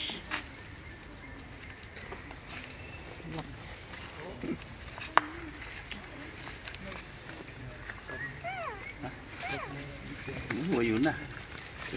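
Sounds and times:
monkey high calls: 0:08.0 - 0:11.4.

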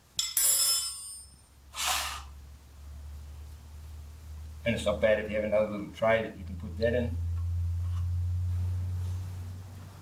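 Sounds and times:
spanner clattering on concrete: 0:00.2 - 0:01.5.

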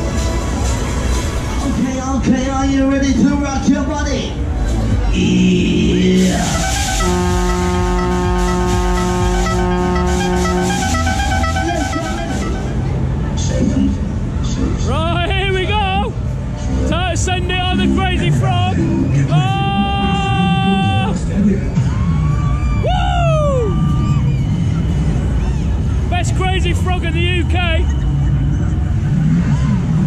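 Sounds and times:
loud ride music: 0:00.0 - 0:30.0
wind and ride rumble: 0:00.0 - 0:30.0
held multi-note tone: 0:07.0 - 0:13.0
amplified voice over speakers: 0:16.9 - 0:21.3.

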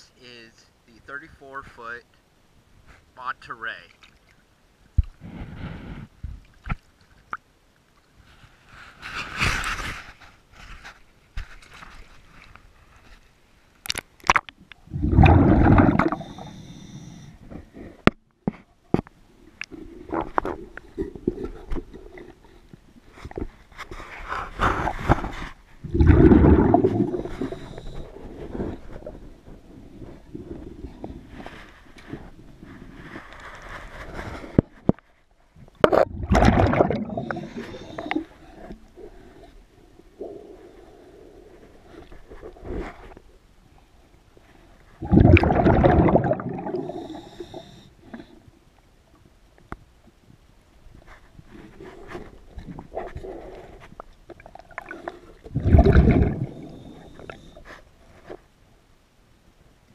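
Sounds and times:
bubbling exhalation: 0:13.9 - 0:17.1, 0:25.8 - 0:29.2, 0:35.8 - 0:38.4, 0:45.0 - 0:47.6, 0:54.4 - 0:57.6
regulator hissing inhalation: 0:16.0 - 0:17.4, 0:46.6 - 0:47.9.

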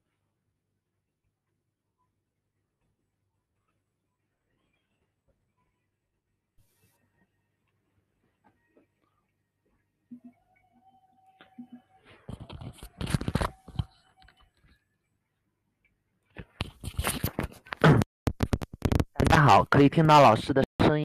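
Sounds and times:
earphone microphone crackling: 0:16.7 - 0:19.6.

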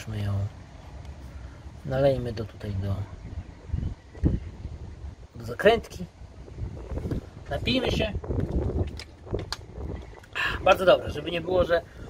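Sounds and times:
wind rumble on microphone: 0:02.5 - 0:12.0.

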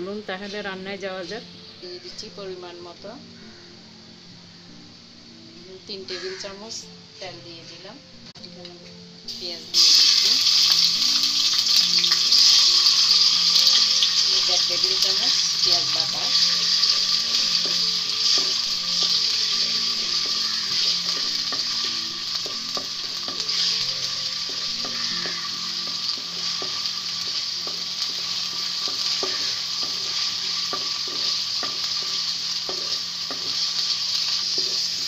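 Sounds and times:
food sizzling in hot oil: 0:09.1 - 0:35.0
wooden spatula scraping a pan: 0:23.2 - 0:25.5.

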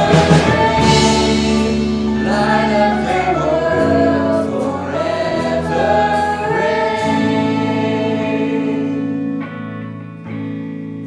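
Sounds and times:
women singing worship song: 0:00.0 - 0:09.4
band accompaniment: 0:00.0 - 0:09.6.

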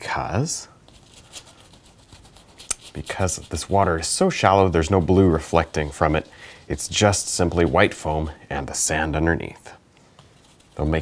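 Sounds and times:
paintbrush scrubbing canvas: 0:00.8 - 0:09.2, 0:10.2 - 0:11.0.

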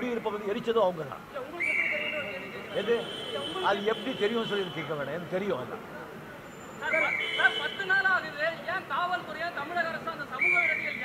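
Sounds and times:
men talking in a crowd: 0:00.0 - 0:11.0.

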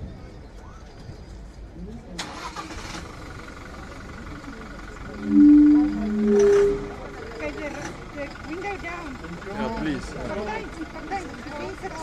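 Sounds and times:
engine starter cranking: 0:02.2 - 0:03.0
engine idling with thin whine: 0:05.9 - 0:12.0.

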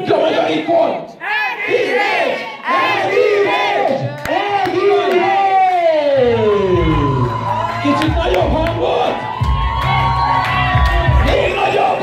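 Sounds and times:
crowd shouting and yelling: 0:00.0 - 0:12.0.

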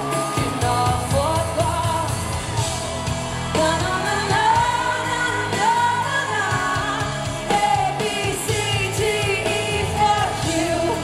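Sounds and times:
woman singing into microphone: 0:00.0 - 0:02.5, 0:03.5 - 0:11.0
rock band playing: 0:00.0 - 0:11.0.

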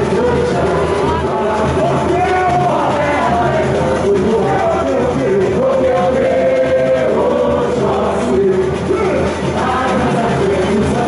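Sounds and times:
chorus of voices singing: 0:00.0 - 0:11.0
samba parade music: 0:00.0 - 0:11.0.

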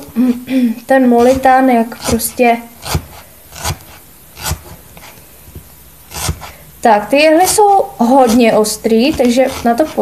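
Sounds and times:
felting needle poking into foam: 0:01.2 - 0:06.6, 0:07.2 - 0:10.0.

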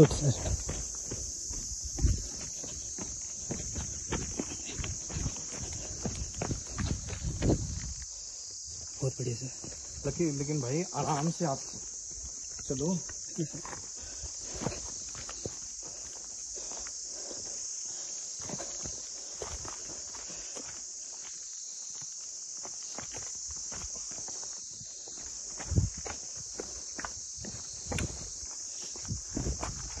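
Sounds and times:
footsteps on trail: 0:00.0 - 0:30.0.

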